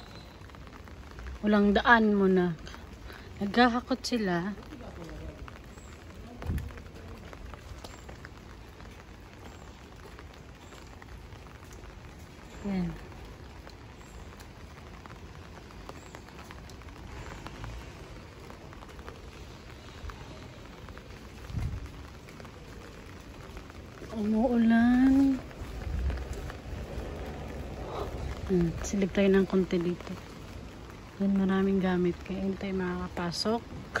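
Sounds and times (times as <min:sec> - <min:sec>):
light rain falling: 0:00.0 - 0:34.0
low rumble: 0:23.6 - 0:31.4.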